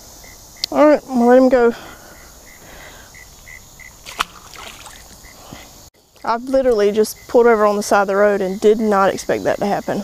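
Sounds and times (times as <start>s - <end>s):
insects chirping: 0.0s - 10.0s.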